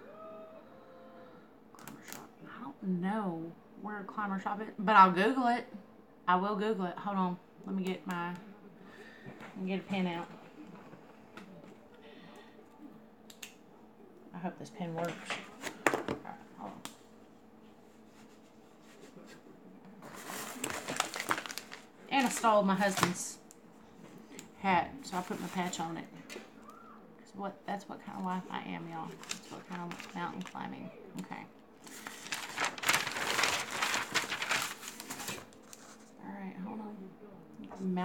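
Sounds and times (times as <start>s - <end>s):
crinkly material rustling: 20.0s - 23.4s, 25.1s - 26.0s, 28.0s - 36.2s
hands rustling and scraping: 31.8s - 36.2s.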